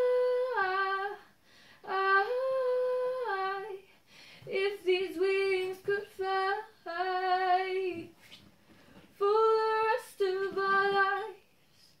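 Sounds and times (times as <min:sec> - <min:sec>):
girl singing unaccompanied: 0:00.0 - 0:08.2, 0:09.2 - 0:12.0.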